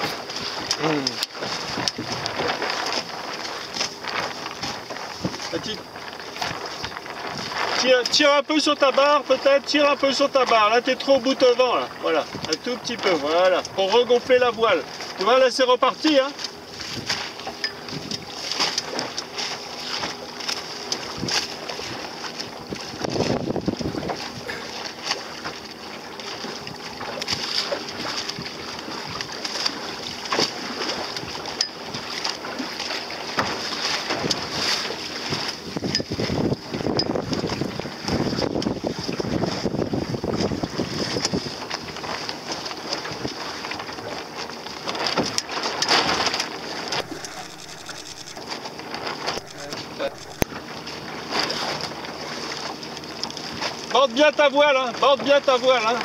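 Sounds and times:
water splashing against hull: 0:00.0 - 0:56.0
wind buffeting microphone: 0:01.4 - 0:03.2, 0:04.0 - 0:07.8, 0:16.6 - 0:18.4, 0:21.0 - 0:24.8, 0:34.1 - 0:42.2.

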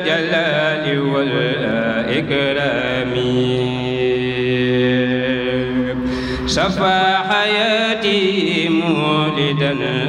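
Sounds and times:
person chanting into a microphone: 0:00.0 - 0:10.0.

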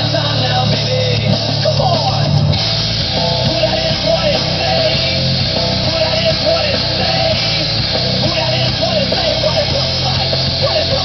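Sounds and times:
heavy rock music with singing: 0:00.0 - 0:11.0.

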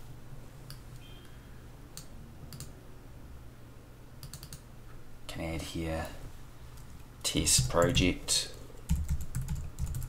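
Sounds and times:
computer mouse clicks: 0:02.0 - 0:02.7, 0:04.2 - 0:04.6.

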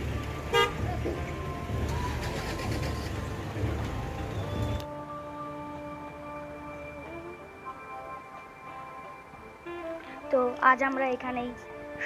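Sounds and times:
low outdoor rumble: 0:00.0 - 0:07.6
vehicle horn toot: 0:00.5 - 0:00.9.

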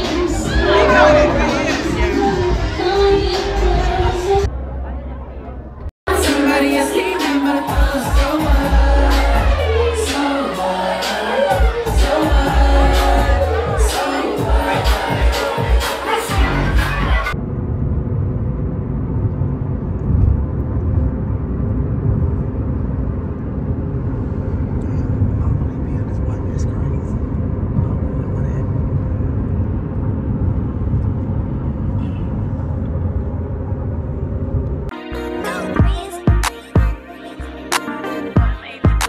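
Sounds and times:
loud party music: 0:00.0 - 0:04.5, 0:06.1 - 0:17.4, 0:34.9 - 0:39.0.

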